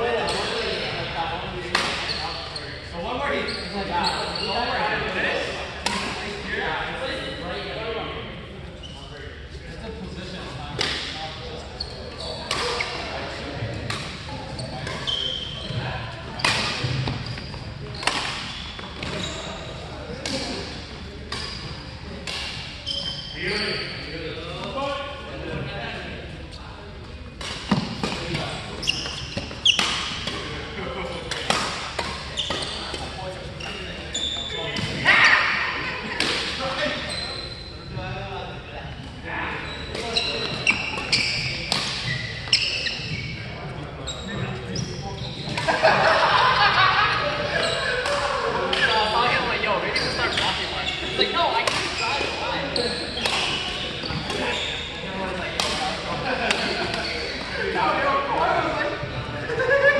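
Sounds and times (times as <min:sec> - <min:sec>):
voices: 0:00.0 - 0:59.9
racket hitting shuttlecock: 0:01.7 - 0:02.1, 0:18.0 - 0:19.2, 0:22.2 - 0:22.7, 0:31.3 - 0:33.1, 0:36.2 - 0:36.6, 0:40.4 - 0:42.1, 0:51.6 - 0:52.0, 0:53.2 - 0:54.4, 0:55.6 - 0:57.0.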